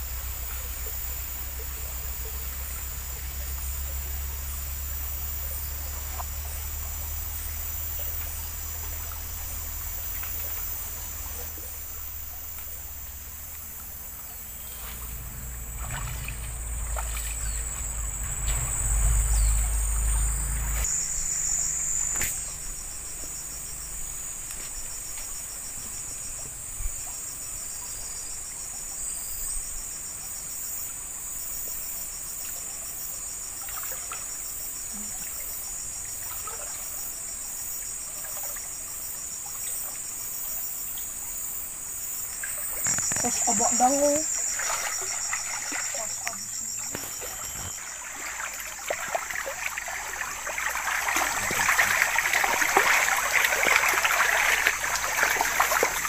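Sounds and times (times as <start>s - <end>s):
insects chorus: 0.0s - 56.0s
feet splashing through stream: 5.8s - 22.7s, 42.4s - 56.0s
low rumble: 12.8s - 23.7s.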